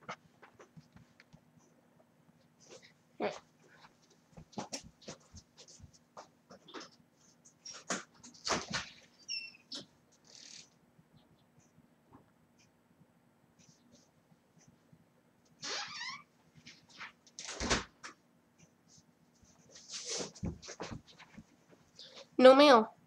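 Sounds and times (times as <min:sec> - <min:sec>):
door squeak: 0:08.8 - 0:10.6, 0:15.6 - 0:16.3.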